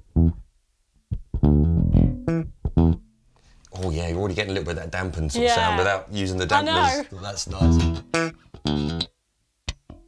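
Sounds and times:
bass guitar plucked fingerstyle: 0.0 - 0.5, 1.1 - 3.2, 7.6 - 10.0.

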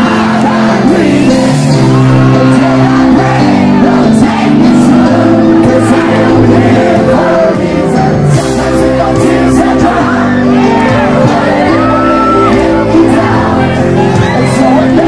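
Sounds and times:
audience shouting and whooping: 0.0 - 4.6, 9.8 - 15.0
live reggae band with singing: 0.0 - 15.0.

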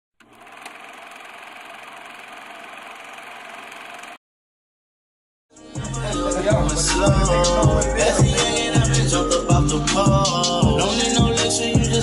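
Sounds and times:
film projector whirring: 0.2 - 4.2.

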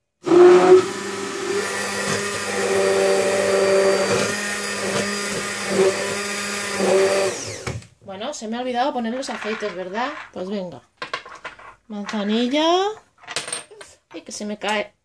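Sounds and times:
immersion blender running: 0.2 - 7.9.

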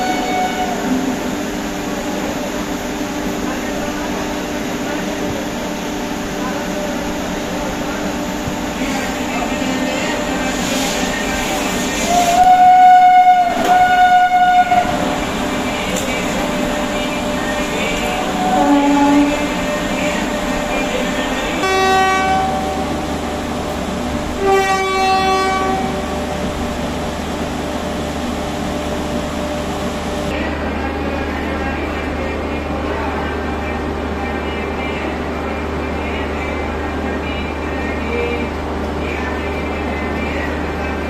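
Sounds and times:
train horn blasts: 0.0 - 1.1, 12.0 - 15.1, 18.4 - 19.6, 21.6 - 23.0, 24.4 - 26.1
standing train humming: 0.0 - 41.0.

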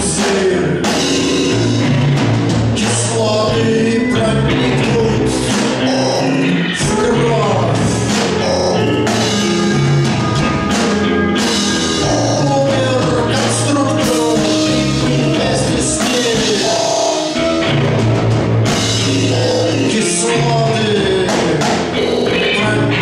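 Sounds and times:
drums: 0.0 - 23.0
electric guitar: 0.0 - 23.0.

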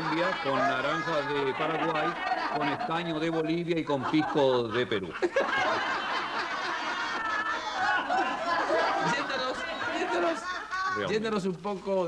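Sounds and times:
audience laughing: 0.0 - 11.1.

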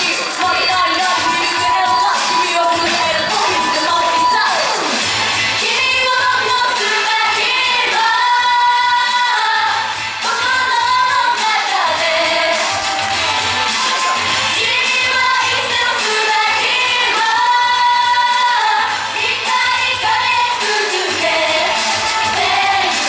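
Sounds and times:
girl group singing pop: 0.0 - 23.0
pop backing track with bass: 0.0 - 23.0.

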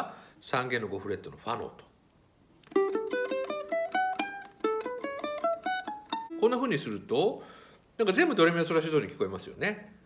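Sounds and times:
ukulele plucked notes: 2.6 - 7.0.

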